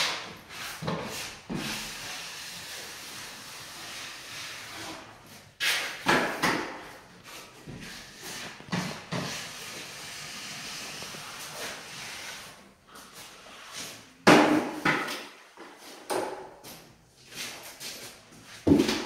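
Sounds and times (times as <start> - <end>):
drywall tool scraping: 0.0 - 14.8.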